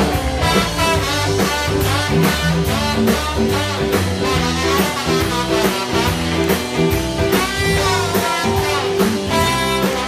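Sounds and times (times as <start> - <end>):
drum beat: 0.0 - 10.0
electric guitar: 0.0 - 10.0
live band playing loud music: 0.0 - 10.0
trombone: 0.0 - 10.0.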